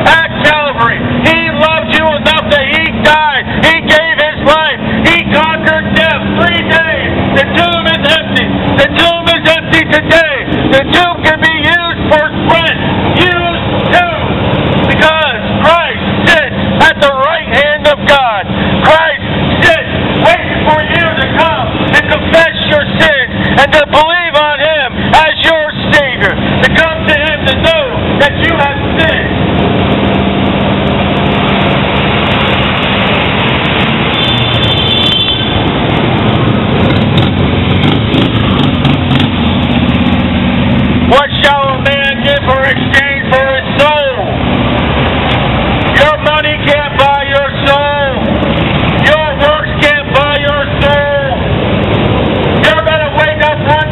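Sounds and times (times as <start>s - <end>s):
loud voice preaching: 0.0s - 29.4s, 41.1s - 44.4s, 45.9s - 48.3s, 49.0s - 51.5s, 52.6s - 53.9s
passing street traffic: 0.0s - 53.9s.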